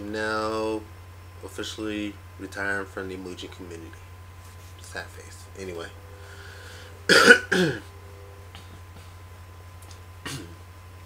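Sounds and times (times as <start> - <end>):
low electrical hum: 0.0 - 11.0
man coughing: 7.1 - 7.9, 10.2 - 10.6.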